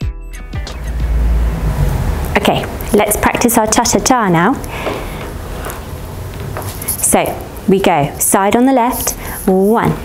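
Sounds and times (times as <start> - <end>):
loud rushing noise with rumble: 0.6 - 4.2.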